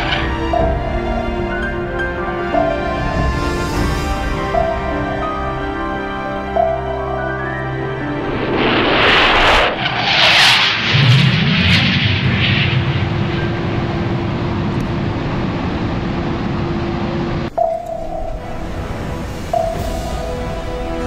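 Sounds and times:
held musical note: 0.0s - 9.8s, 17.5s - 21.0s
fighter jet diving past: 7.6s - 16.2s.

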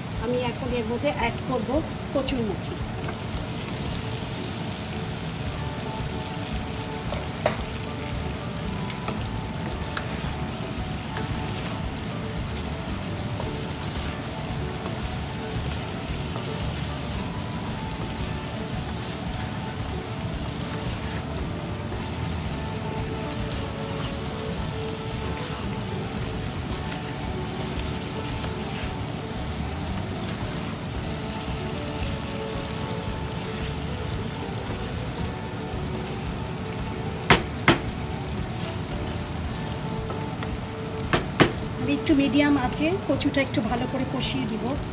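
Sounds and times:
food sizzling in a pan: 0.0s - 44.9s
wooden spatula stirring and scraping: 8.8s - 35.2s.

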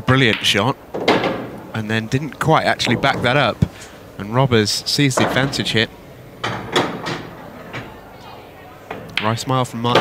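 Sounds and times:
pool balls knocking: 0.2s - 3.8s, 5.1s - 8.1s, 8.9s - 10.0s
cue striking ball: 0.3s - 1.7s, 5.2s - 5.7s, 6.4s - 8.0s.

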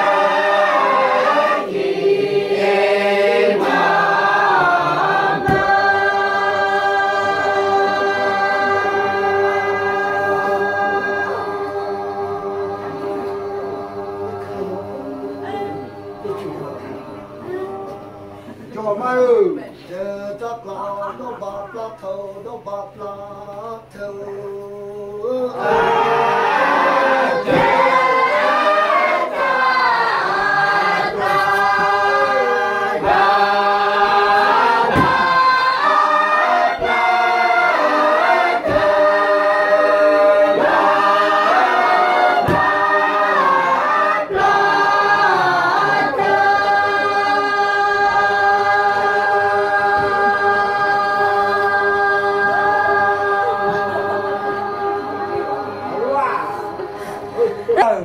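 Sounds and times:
group singing unaccompanied: 0.0s - 58.0s
sharp knocks: 34.9s - 35.4s.

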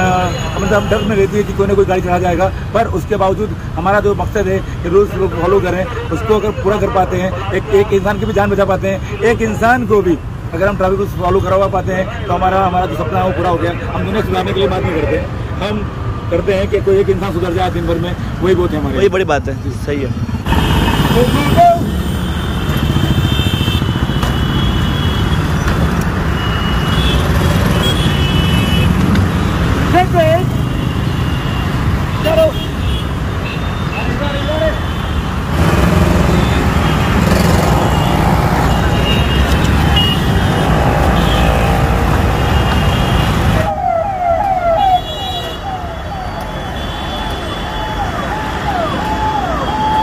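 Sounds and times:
traffic engines rumbling: 0.0s - 50.0s.

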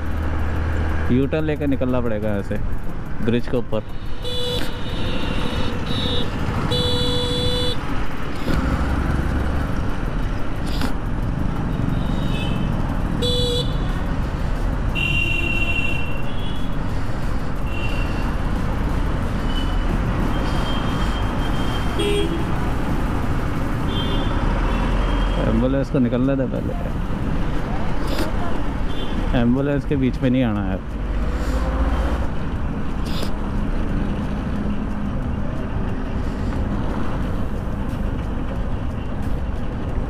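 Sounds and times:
motorcycle riding: 0.0s - 3.4s, 4.0s - 15.0s
road traffic: 0.0s - 40.0s
vehicle horns tooting: 4.0s - 7.8s, 12.0s - 13.9s, 14.9s - 16.7s, 20.4s - 22.5s.

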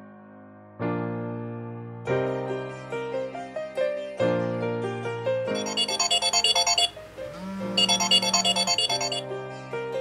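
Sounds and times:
soft piano music: 0.0s - 10.0s
smartphone alarm melody: 5.6s - 9.3s.

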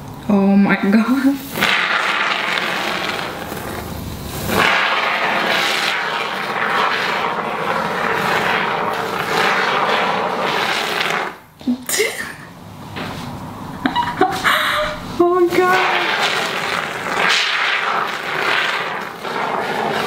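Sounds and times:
aerosol foam spraying hiss: 1.4s - 11.4s.

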